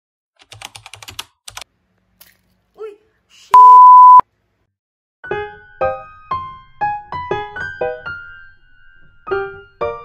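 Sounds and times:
loud high-pitched beep: 3.6s - 4.2s.

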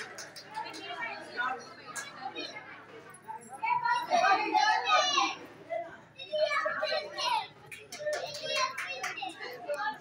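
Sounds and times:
children shouting and chattering: 0.0s - 10.0s.

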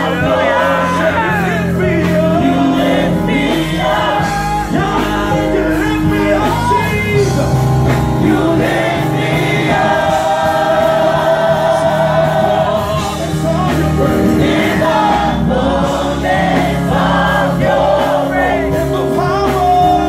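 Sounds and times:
backing singers: 0.0s - 20.0s
bass guitar: 0.0s - 20.0s
drums: 0.0s - 20.0s
lead singer: 0.0s - 20.0s.

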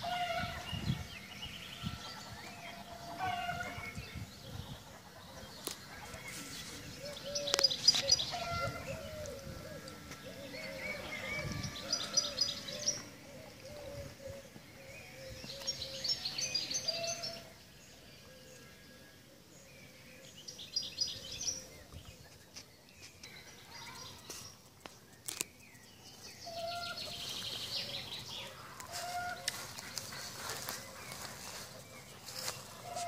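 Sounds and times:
songbirds singing: 0.0s - 33.0s.

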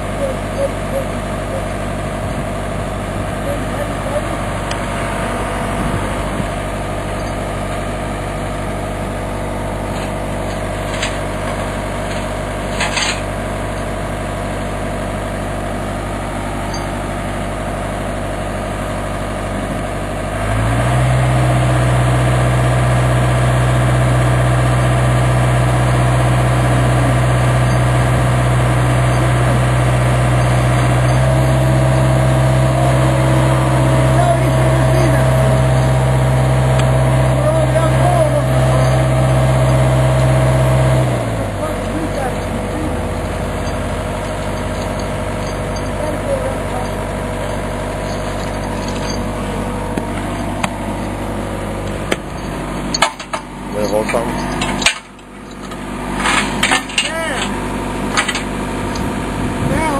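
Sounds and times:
excavator diesel engine running: 0.0s - 59.9s.

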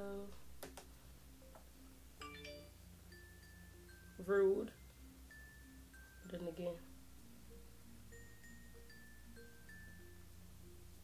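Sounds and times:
soft held music tones: 0.0s - 11.0s.

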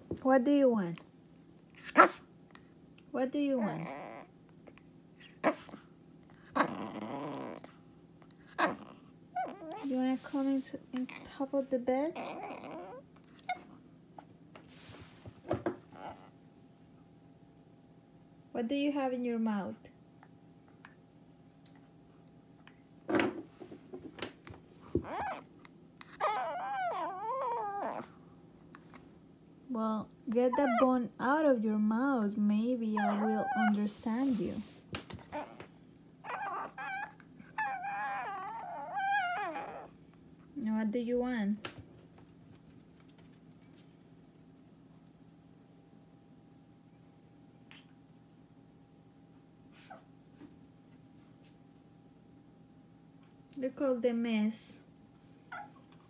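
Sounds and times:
dog whining: 3.6s - 5.8s, 6.4s - 7.8s, 8.4s - 10.0s, 12.0s - 14.3s, 15.8s - 16.5s, 24.8s - 28.2s, 30.5s - 31.0s, 32.9s - 33.9s, 35.2s - 40.1s, 55.5s - 56.0s.

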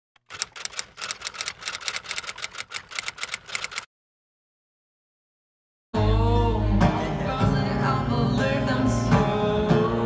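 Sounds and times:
typewriter keys clacking: 0.2s - 3.9s.

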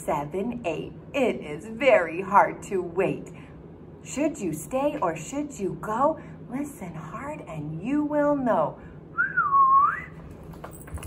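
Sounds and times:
person whistling: 9.2s - 10.2s.

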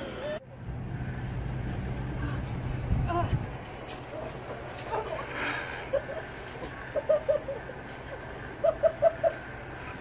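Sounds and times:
low mechanical rumble: 0.0s - 10.0s.

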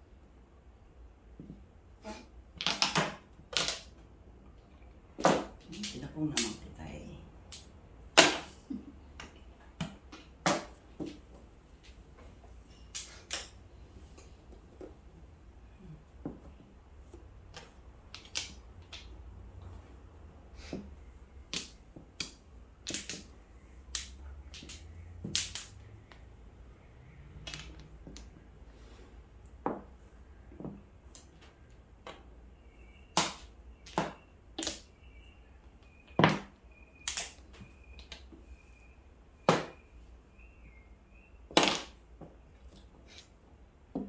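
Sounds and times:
mahjong tiles clacking on table: 17.4s - 19.3s, 21.4s - 26.3s, 27.2s - 28.5s.

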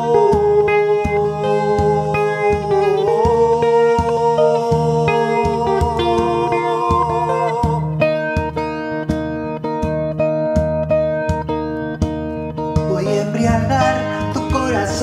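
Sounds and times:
person singing: 0.0s - 9.0s, 12.6s - 15.0s
acoustic guitar picking: 0.0s - 15.0s
frame drum beats: 0.0s - 15.0s.

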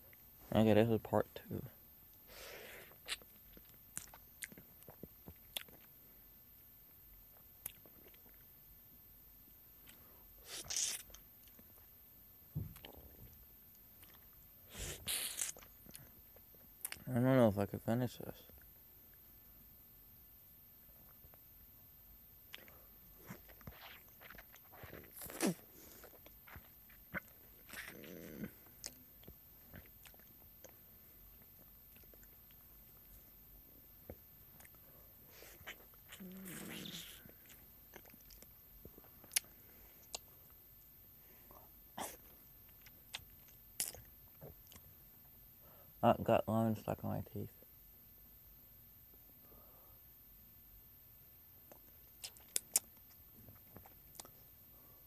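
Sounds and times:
person chewing a lemon: 2.8s - 5.9s, 7.6s - 8.4s, 9.8s - 11.8s, 14.0s - 16.2s, 22.5s - 32.6s, 35.4s - 40.4s, 42.0s - 44.8s, 51.7s - 54.5s
sweeping mouth noise: 35.4s - 37.5s.

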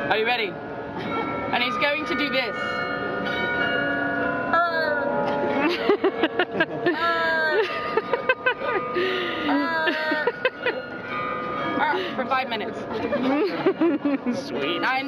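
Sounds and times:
glockenspiel bells ringing: 0.0s - 15.0s.

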